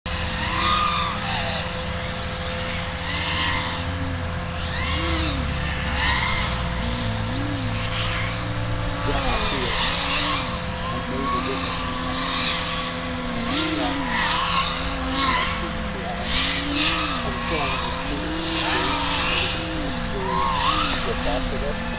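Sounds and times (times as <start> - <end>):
drone motors whining: 0.1 - 21.9
electrical hum: 0.1 - 21.9
propeller rushing noise: 0.1 - 21.9.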